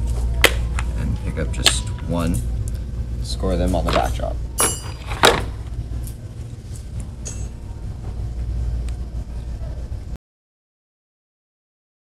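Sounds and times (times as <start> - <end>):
steady low hum: 0.0 - 10.2.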